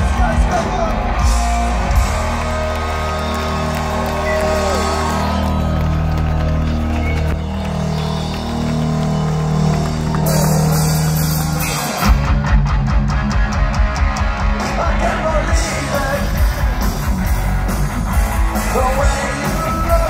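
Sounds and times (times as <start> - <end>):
droning electric guitar and bass: 0.0 - 20.0
live punk band: 0.0 - 20.0.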